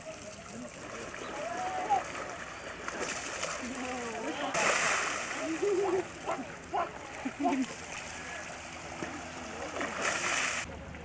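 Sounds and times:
bears splashing water: 0:00.5 - 0:10.7.

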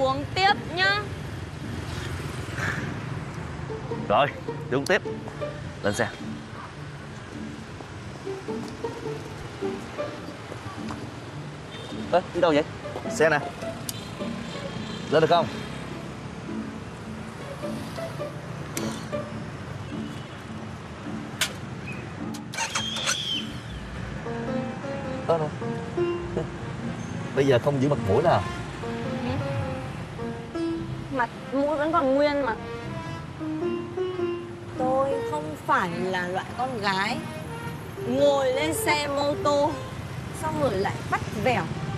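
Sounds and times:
cars passing: 0:00.0 - 0:41.9
city street traffic rumble: 0:00.0 - 0:41.9
motorbikes passing: 0:00.0 - 0:41.9
high squeal: 0:21.9 - 0:23.8.

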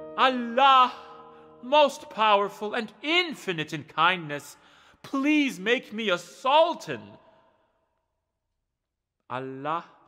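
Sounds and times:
man speaking: 0:00.2 - 0:07.3, 0:09.3 - 0:10.0.

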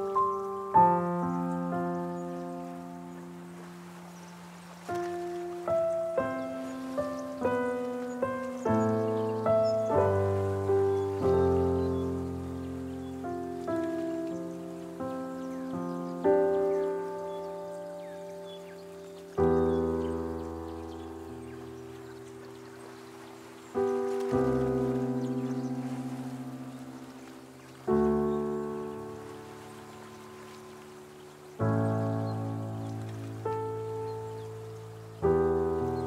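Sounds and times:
solo piano slow chords: 0:00.0 - 0:36.0.

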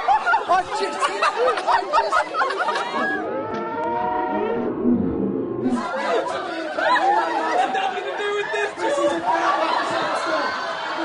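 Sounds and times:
crowd talking and calling out: 0:00.0 - 0:04.7, 0:05.3 - 0:11.0.

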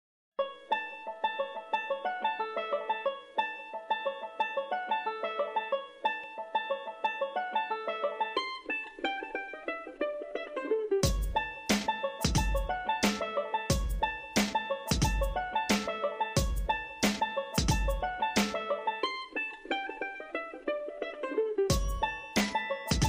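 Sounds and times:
plucked-string melody: 0:00.4 - 0:23.0
heavy beat: 0:11.0 - 0:18.8, 0:21.7 - 0:23.0.

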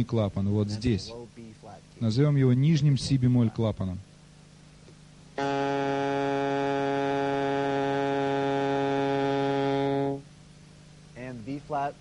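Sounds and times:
saxophone low note: 0:05.4 - 0:10.3.

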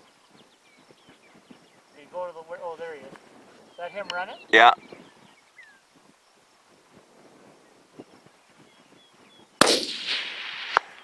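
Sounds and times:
rifle shot with echo: 0:09.6 - 0:11.0.

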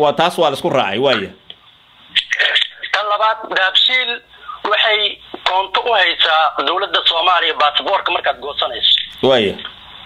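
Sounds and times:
man talking over telephone line: 0:02.1 - 0:09.7.

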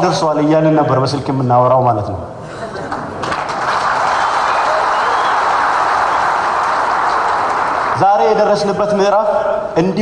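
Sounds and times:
audience applause: 0:02.6 - 0:08.0.

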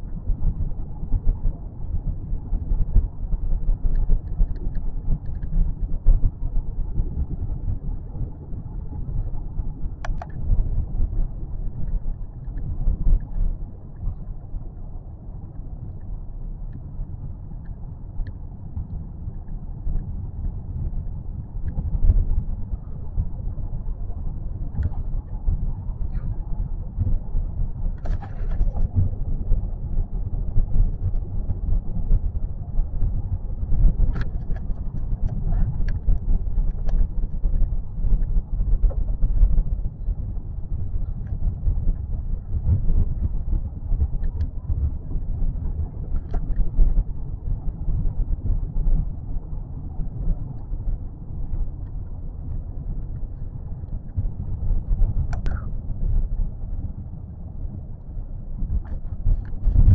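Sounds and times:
faint clicks and knocks: 0:03.8 - 0:06.2, 0:10.0 - 0:10.7, 0:24.7 - 0:27.2, 0:33.7 - 0:39.6, 0:43.9 - 0:48.2, 0:54.9 - 0:56.2.

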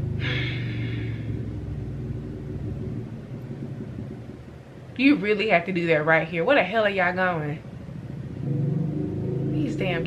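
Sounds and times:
engine low rumble: 0:00.0 - 0:10.0.

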